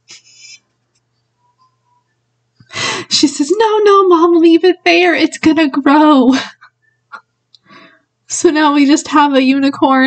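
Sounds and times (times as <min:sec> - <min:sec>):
woman breathy laugh: 0:06.3 - 0:06.7.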